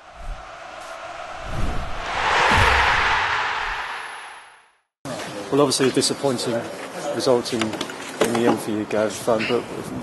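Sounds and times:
rush of noise: 0.0s - 4.8s
deep thuds: 1.6s - 4.4s.

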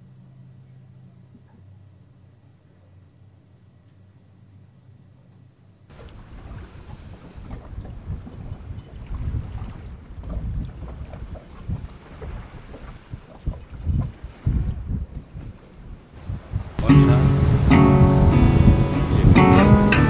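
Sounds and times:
wind buffeting microphone: 5.9s - 20.0s.

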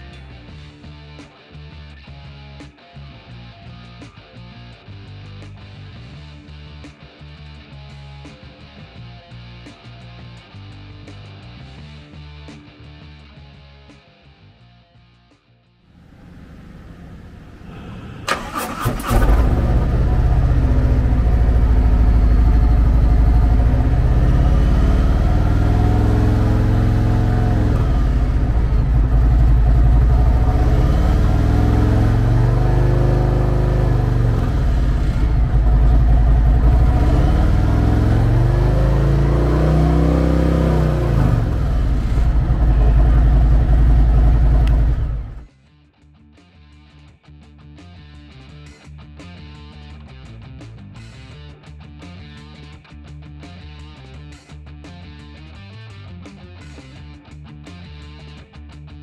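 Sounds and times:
motorcycle engine idling and revving: 15.9s - 45.5s
motorcycle starter cranking: 18.2s - 19.8s.

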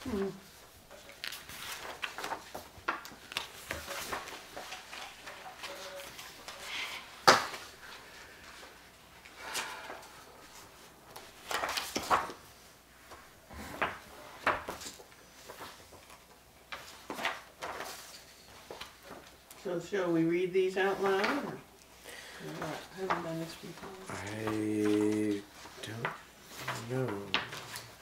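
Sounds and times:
paper rustling: 0.1s - 8.9s, 10.4s - 13.3s, 13.9s - 19.6s, 22.5s - 28.0s.

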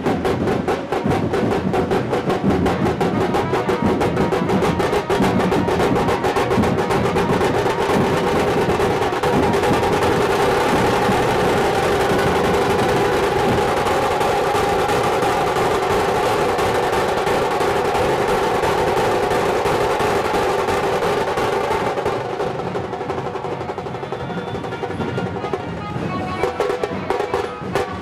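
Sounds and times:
drum troupe drumming: 0.0s - 28.0s.

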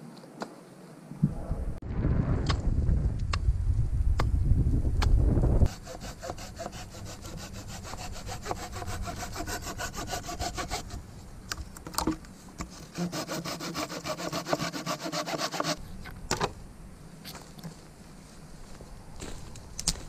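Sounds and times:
wind rumble on microphone: 1.2s - 5.8s
hand saw cutting wood: 5.7s - 11.0s, 12.6s - 15.8s.

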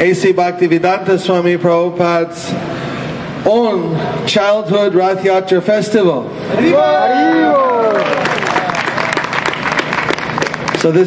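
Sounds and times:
audience applauding: 7.6s - 11.0s.

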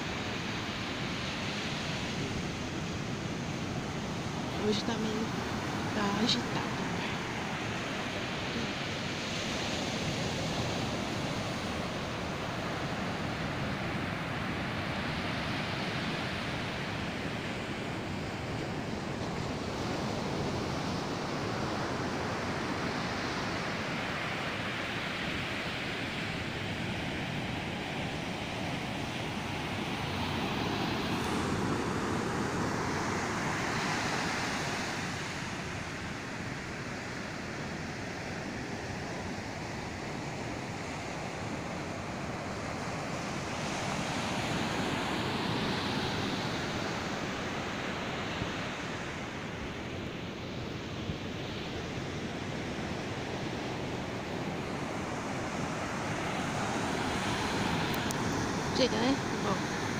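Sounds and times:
ocean surf breaking on beach: 0.0s - 59.9s.

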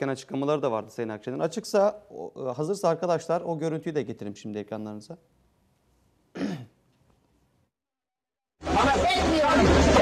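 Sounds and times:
man clearing his throat: 6.3s - 6.8s.

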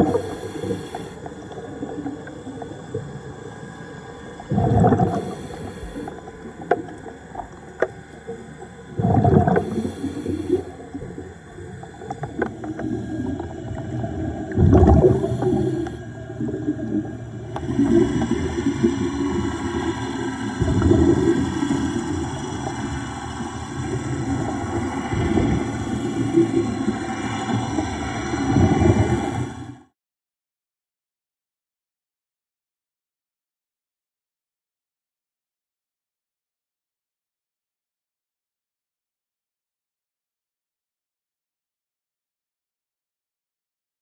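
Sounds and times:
exhaled bubbles gurgling: 0.0s - 29.9s
low underwater rumble: 0.0s - 29.9s.

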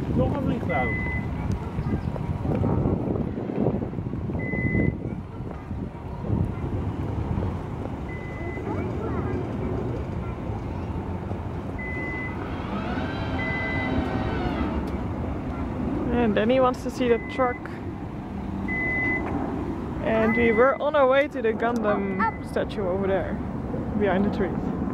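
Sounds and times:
wind noise: 0.0s - 16.6s
low engine rumble: 0.0s - 24.9s
truck warning beeper: 0.7s - 1.4s, 4.4s - 5.0s, 8.1s - 8.8s, 11.8s - 14.6s, 17.1s - 17.8s, 18.7s - 19.3s, 20.2s - 21.0s, 22.1s - 22.6s.

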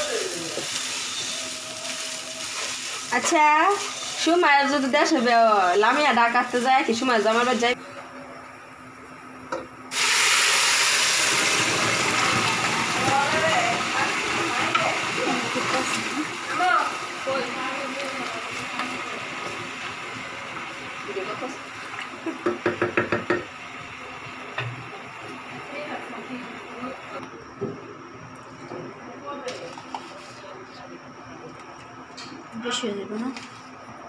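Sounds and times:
water sizzling in hot pot: 0.0s - 7.8s, 9.9s - 27.2s.

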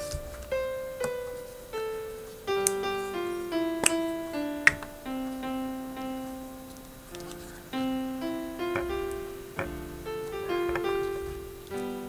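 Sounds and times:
slow piano notes: 0.0s - 12.0s.

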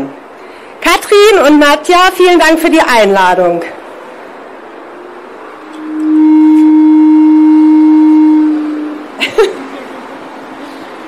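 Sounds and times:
microphone feedback tone: 5.6s - 9.0s.

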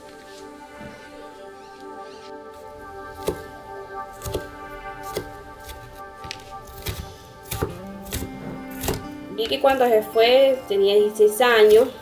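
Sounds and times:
soft background music: 0.0s - 12.0s
knife chopping on wooden board: 3.2s - 3.5s, 4.2s - 9.6s.

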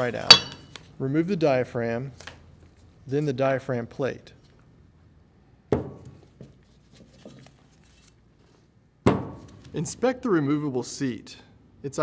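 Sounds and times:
metal knock with ring: 0.3s - 0.7s.

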